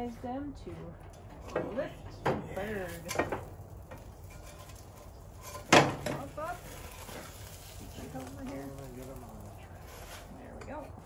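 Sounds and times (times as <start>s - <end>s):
serving spoons clicking on grill: 2.9s - 6.3s.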